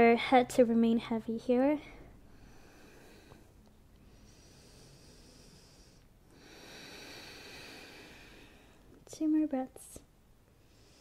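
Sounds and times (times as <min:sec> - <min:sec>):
person breathing slowly and deeply: 0:01.9 - 0:08.9, 0:10.6 - 0:11.0.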